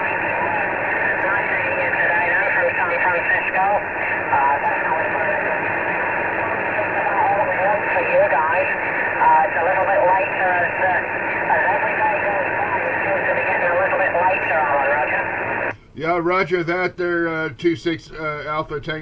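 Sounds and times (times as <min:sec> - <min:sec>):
radio static hiss: 0:00.0 - 0:19.0
voice over radio: 0:00.0 - 0:19.0.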